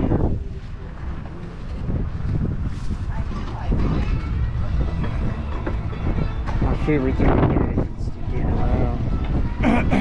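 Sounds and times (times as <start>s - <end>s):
people talking in background: 0.0s - 10.0s
wind buffeting microphone: 0.0s - 10.0s.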